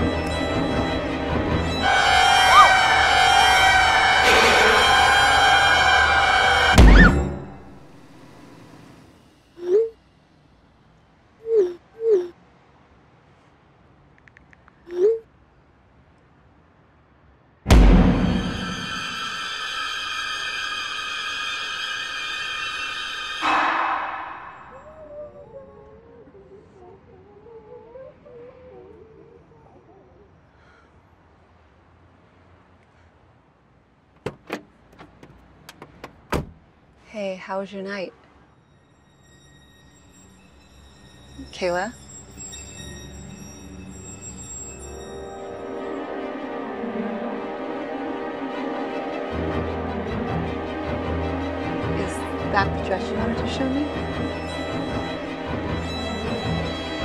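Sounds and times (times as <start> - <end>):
dissonant horror film chord: 0.0 - 10.2, 17.7 - 24.9, 38.5 - 57.0
loud jump-scare impact hit: 5.8 - 7.7, 17.7 - 19.3
car door latch clicking: 34.2 - 36.6
light clicks and knocks: 34.2 - 36.6.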